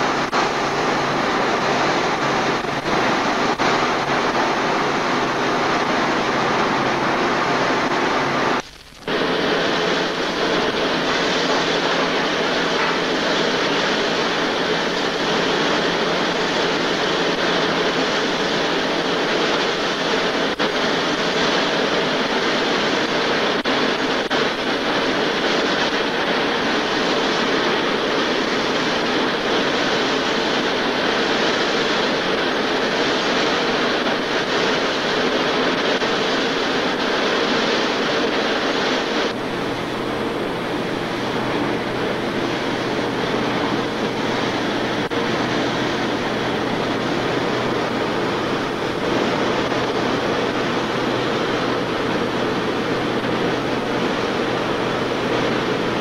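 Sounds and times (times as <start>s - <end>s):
textile machinery whirring clatter: 0.0s - 56.0s.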